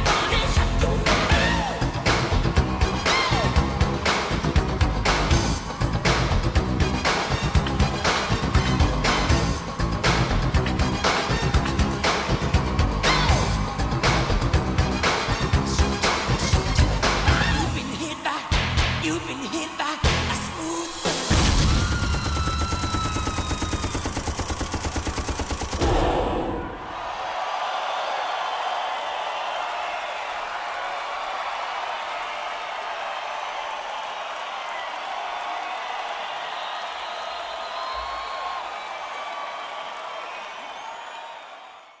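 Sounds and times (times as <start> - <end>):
concert crowd cheering and screaming: 0.0 - 24.7, 25.7 - 42.0
rapid machine-gun fire: 21.4 - 26.1.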